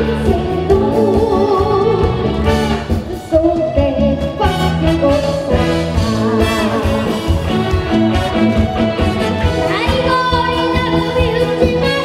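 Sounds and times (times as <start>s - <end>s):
live band playing: 0.0s - 12.0s
boy singing into a microphone: 9.7s - 12.0s.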